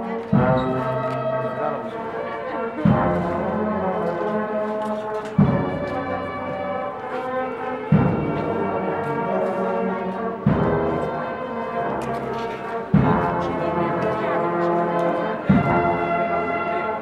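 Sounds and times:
brass playing sustained chords: 0:00.0 - 0:17.0
heavy drum strokes: 0:00.3 - 0:06.8, 0:07.4 - 0:09.7, 0:10.3 - 0:17.0.

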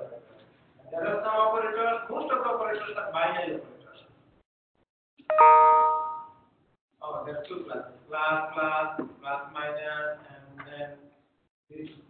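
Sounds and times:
chime ringing: 0:05.3 - 0:06.4.

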